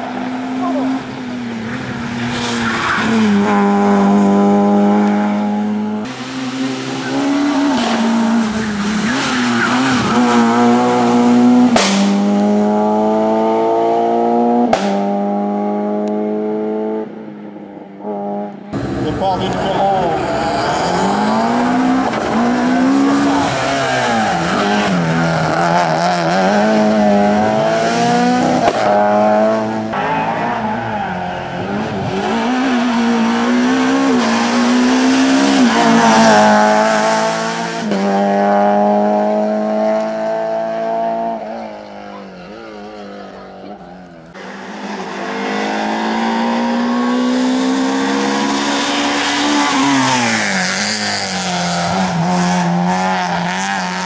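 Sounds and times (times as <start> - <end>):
race car engine at full throttle: 0.0 - 54.0.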